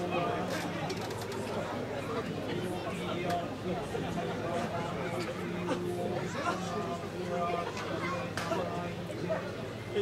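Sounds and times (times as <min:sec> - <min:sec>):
murmur of onlookers: 0:00.0 - 0:10.0.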